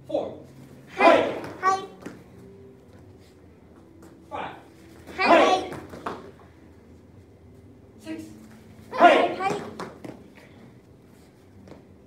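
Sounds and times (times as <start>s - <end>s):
feet tapping on foam mats: 5.0s - 6.4s.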